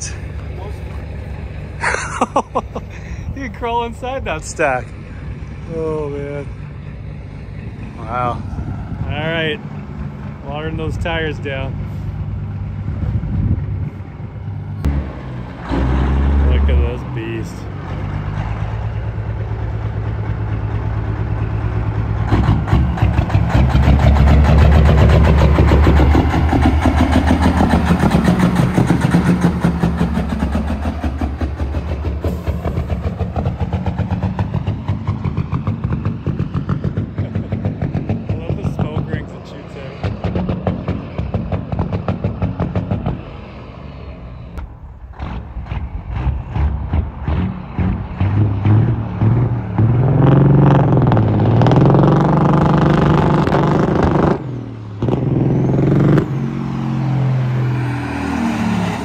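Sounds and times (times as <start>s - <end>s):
diesel truck engine revving: 0.0s - 59.0s.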